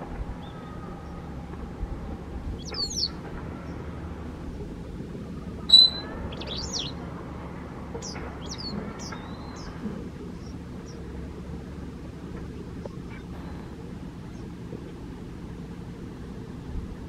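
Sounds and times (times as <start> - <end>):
bird chirping: 2.6 - 3.8, 5.6 - 7.0, 8.0 - 11.1.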